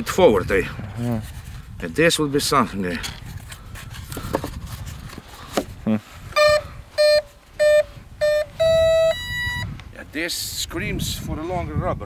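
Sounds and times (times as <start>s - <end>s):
longer higher beep tone: 6.4s - 9.7s
motor controller beeps: 6.4s - 9.7s.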